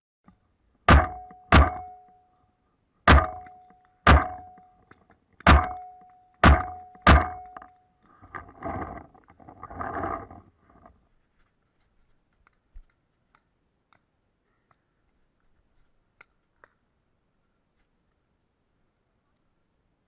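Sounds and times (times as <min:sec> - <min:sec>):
paintball marker shots: 0:00.9 - 0:02.1, 0:03.1 - 0:04.7, 0:05.4 - 0:07.6
soft rough noise: 0:07.2 - 0:11.9.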